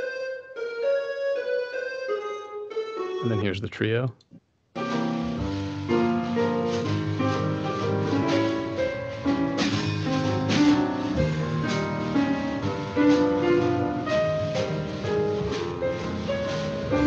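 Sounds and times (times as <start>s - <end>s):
drum and cymbal hits: 4.8s - 17.0s
piano playing jazz waltz: 4.8s - 17.0s.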